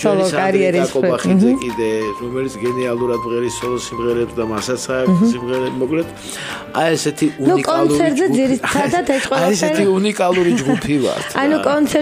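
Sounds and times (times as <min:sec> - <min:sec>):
musical accompaniment: 0:00.8 - 0:11.8
man singing: 0:05.1 - 0:05.5.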